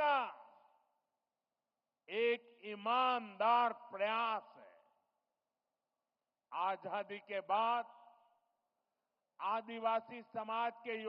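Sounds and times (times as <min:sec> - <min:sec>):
man speaking into a microphone: 0:00.0 - 0:00.9, 0:02.0 - 0:05.2, 0:06.4 - 0:11.0.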